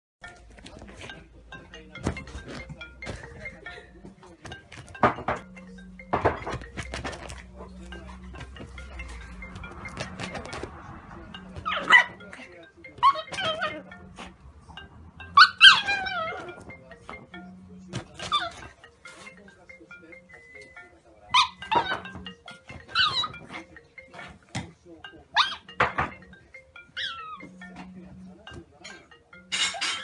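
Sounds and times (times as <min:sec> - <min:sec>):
dog whining: 0:11.6 - 0:12.2, 0:13.0 - 0:14.0, 0:15.4 - 0:16.7, 0:18.2 - 0:18.8, 0:21.3 - 0:24.3, 0:26.8 - 0:27.6.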